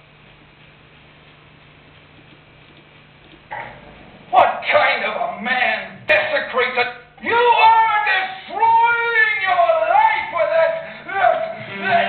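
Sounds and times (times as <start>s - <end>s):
low electrical hum and hiss: 0.0s - 12.0s
sudden loud sound: 3.5s - 6.1s.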